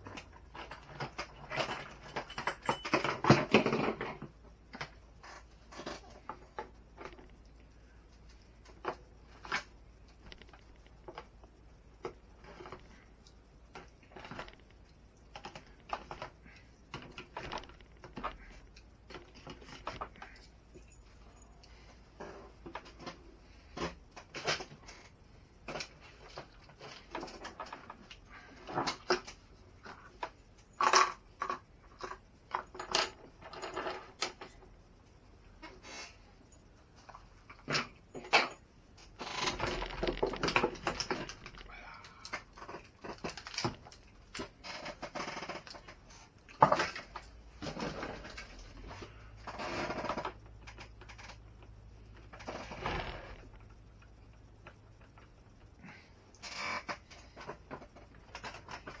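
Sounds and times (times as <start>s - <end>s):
plastic parts clicking and rattling: 0.0s - 21.0s, 22.2s - 34.7s, 37.0s - 59.0s.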